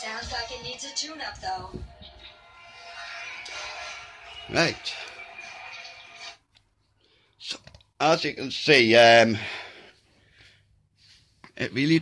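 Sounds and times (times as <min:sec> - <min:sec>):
cartoon music from television: 0:00.0 - 0:06.5.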